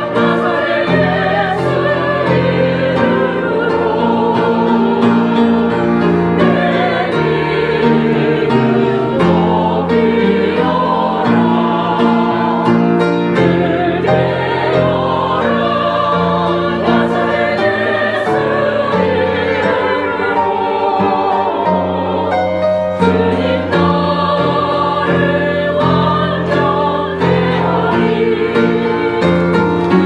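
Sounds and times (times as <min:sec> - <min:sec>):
choir singing: 0:00.0 - 0:30.0
upright piano: 0:00.0 - 0:30.0.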